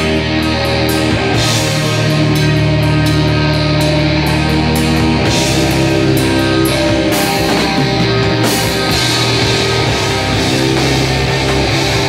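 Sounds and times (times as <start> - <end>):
distorted electric guitar: 0.0 - 12.0
drum kit: 0.0 - 12.0
electric bass: 0.0 - 12.0.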